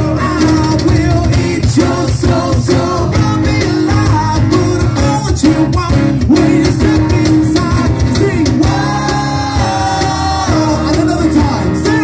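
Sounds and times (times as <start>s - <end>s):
bass guitar: 0.0s - 12.0s
drums keeping a steady beat: 0.0s - 12.0s
person singing: 0.0s - 12.0s.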